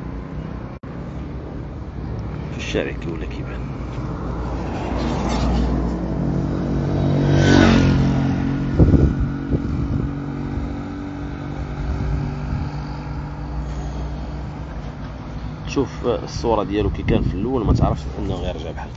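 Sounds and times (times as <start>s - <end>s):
traffic engine hum: 0.0s - 18.9s
car passing close by: 2.2s - 15.7s.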